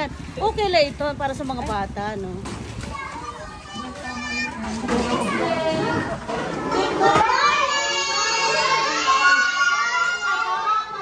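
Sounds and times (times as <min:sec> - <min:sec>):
small children chattering: 0:02.6 - 0:11.0.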